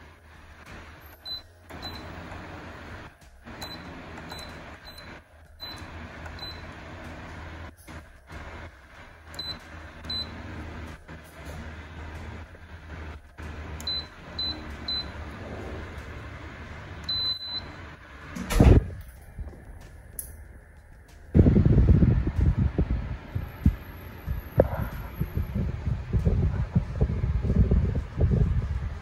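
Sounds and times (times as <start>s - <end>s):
fan humming: 0.0s - 29.0s.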